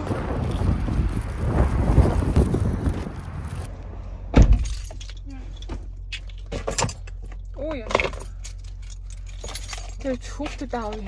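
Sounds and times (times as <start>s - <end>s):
car door shutting: 4.3s - 5.0s
keys jingling: 4.5s - 11.0s.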